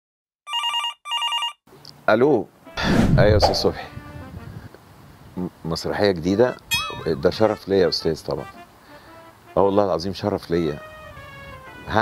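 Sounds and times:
telephone trilling rings: 0.5s - 1.6s.

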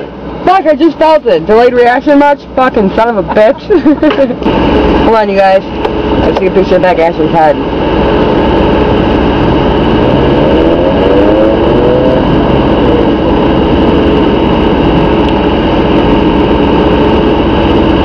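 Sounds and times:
car engine idling: 0.0s - 18.0s
air-conditioning blower: 2.2s - 18.0s
short rising pitched sound: 7.6s - 18.0s.

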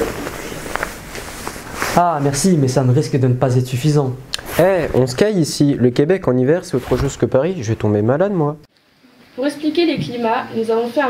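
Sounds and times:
clothing rustling: 0.0s - 2.5s.

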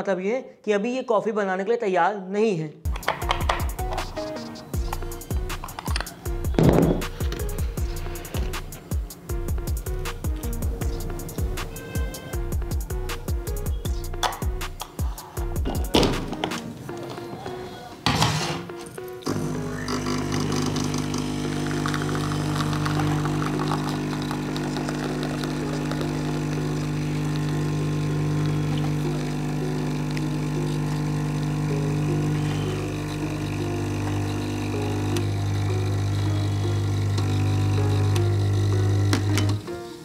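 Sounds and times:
espresso machine pump buzzing: 19.3s - 39.7s.

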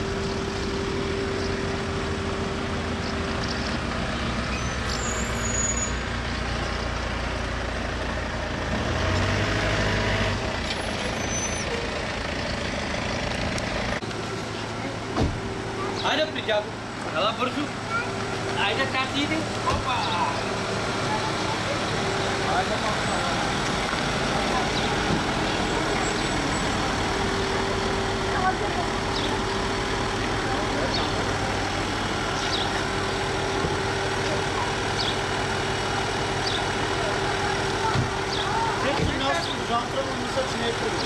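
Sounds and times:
car engine idling: 0.0s - 41.0s.

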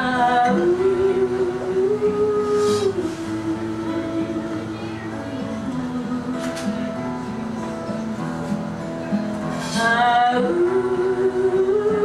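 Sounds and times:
woman singing long notes: 0.0s - 6.9s, 9.6s - 12.0s
acoustic guitar: 0.0s - 12.0s.

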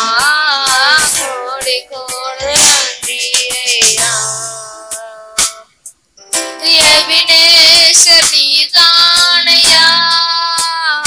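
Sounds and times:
boys singing devotional song: 0.0s - 5.7s, 6.6s - 11.0s
keyboard accompaniment: 0.0s - 10.7s.

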